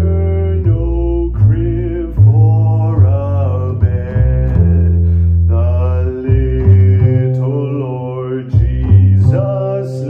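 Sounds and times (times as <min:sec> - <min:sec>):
man singing: 0:00.0 - 0:10.0
upright double bass plucked: 0:00.0 - 0:10.0.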